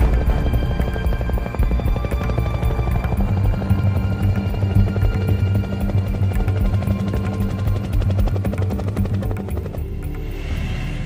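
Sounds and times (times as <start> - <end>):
helicopter rotor blades chopping: 0.0 - 10.4
low soundtrack music: 0.0 - 11.0.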